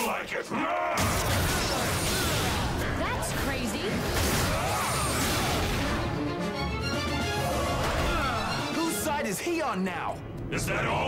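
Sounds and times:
action music: 0.0 - 11.0.

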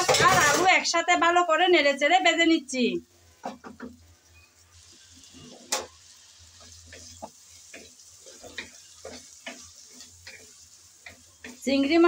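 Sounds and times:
food sizzling in hot oil: 0.0 - 12.0
wooden spatula scraping a pan: 4.8 - 11.6.

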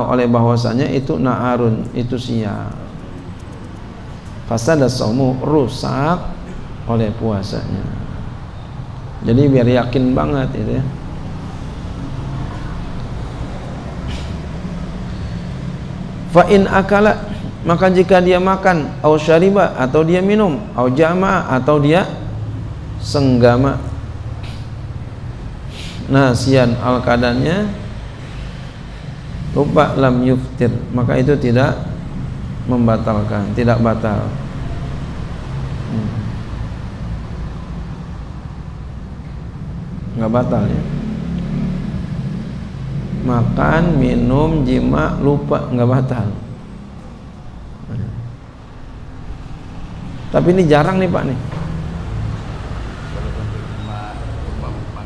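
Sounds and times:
room noise rumble and hum: 0.0 - 55.0.

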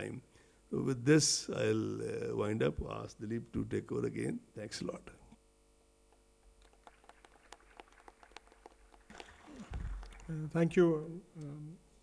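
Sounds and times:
sparse applause: 6.7 - 10.6.

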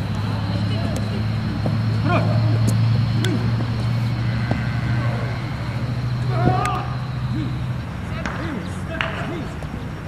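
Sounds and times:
steady low hum: 0.0 - 10.0
children calling out: 3.2 - 8.1.

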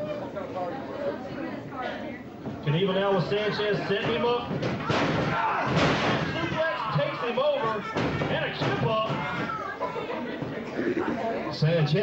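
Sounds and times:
people shouting: 4.1 - 9.8.

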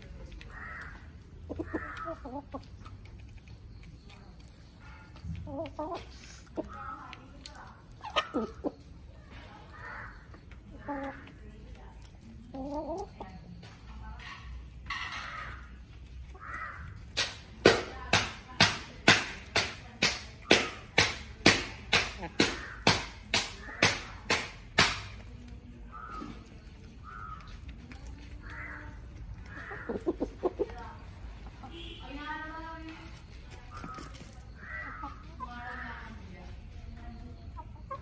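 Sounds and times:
chicken sharp calls: 0.3 - 4.5, 5.5 - 11.4, 20.5 - 24.1, 24.8 - 32.0, 33.2 - 35.8
chickens clucking softly: 0.3 - 4.6, 7.5 - 17.0, 25.7 - 31.8, 37.1 - 38.0.

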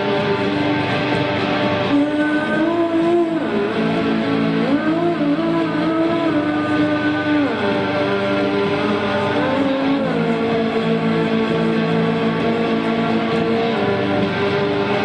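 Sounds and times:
electric guitar accompaniment: 0.0 - 15.0
woman singing long notes: 1.8 - 15.0.

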